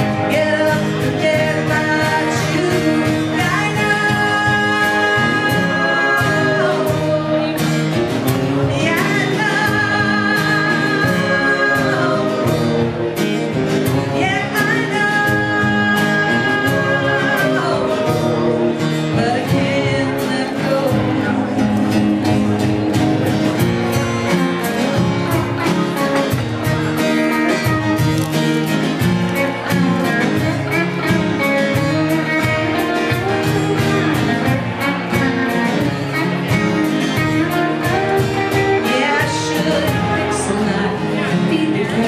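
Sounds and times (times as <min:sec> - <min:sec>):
drum kit: 0:00.0 - 0:42.0
guitar: 0:00.0 - 0:42.0
live band playing country song: 0:00.0 - 0:42.0.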